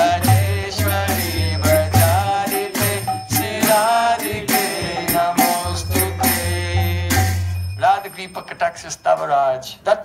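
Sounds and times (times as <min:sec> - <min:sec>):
man singing a chant: 0:00.0 - 0:07.4
small cymbals jingling: 0:00.0 - 0:09.8.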